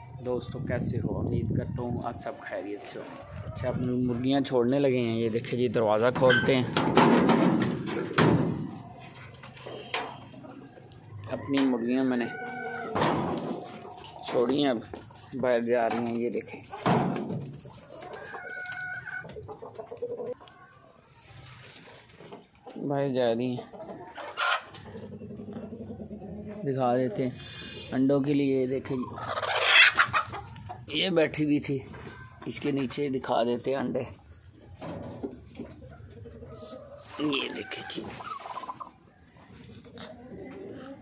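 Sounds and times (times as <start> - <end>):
chickens clucking: 0.0 - 41.0
chicken high call: 11.2 - 13.0.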